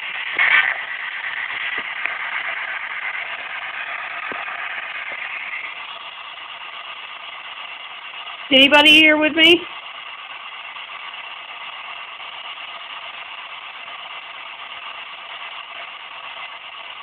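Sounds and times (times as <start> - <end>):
radio static hiss: 0.0 - 17.0.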